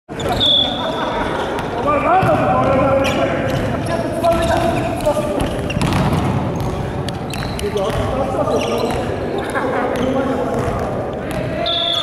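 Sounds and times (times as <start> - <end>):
players calling out and shouting: 0.1 - 12.0
volleyball being struck: 5.4 - 6.8.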